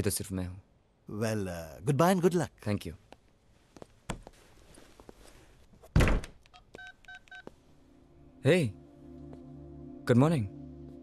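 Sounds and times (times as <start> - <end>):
wooden door shutting: 5.9 - 6.4.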